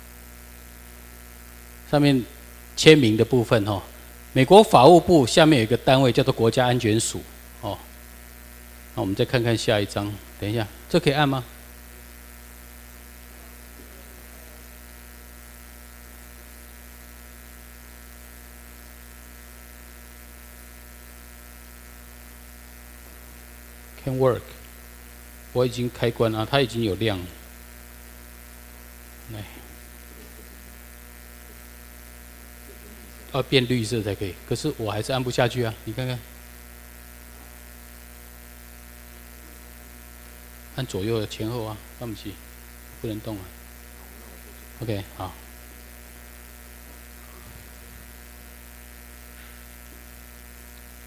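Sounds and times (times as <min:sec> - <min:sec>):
electrical mains hum: 0:00.0 - 0:51.0
man's voice: 0:32.9 - 0:36.3.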